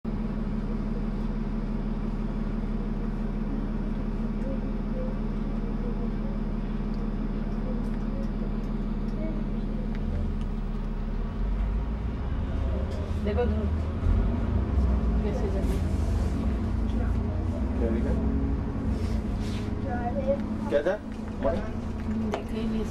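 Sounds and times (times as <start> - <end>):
bus diesel engine drone: 0.0 - 22.9
passengers murmuring: 0.5 - 22.9.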